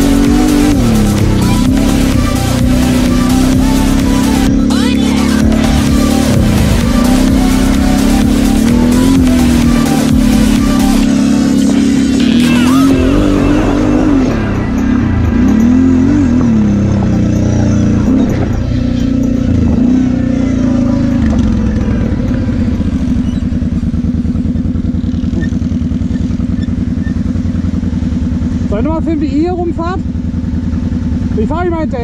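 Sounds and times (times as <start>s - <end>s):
quad engine revving and idling: 0.0s - 32.0s.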